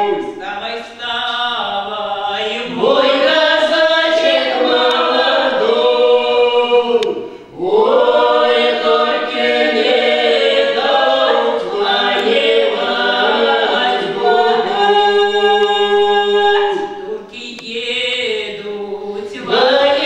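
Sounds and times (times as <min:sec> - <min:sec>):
a cappella folk singing in harmony: 0:00.0 - 0:20.0.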